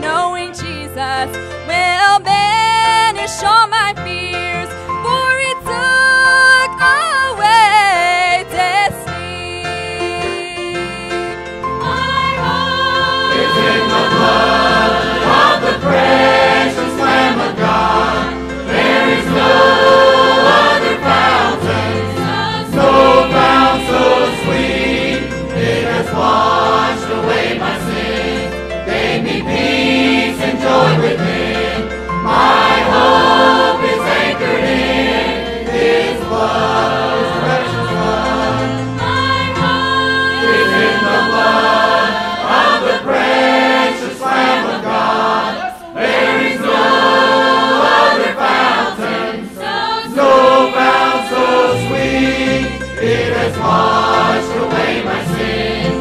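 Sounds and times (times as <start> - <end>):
piano accompaniment: 0.0 - 56.0
choir singing a gospel hymn: 9.1 - 56.0.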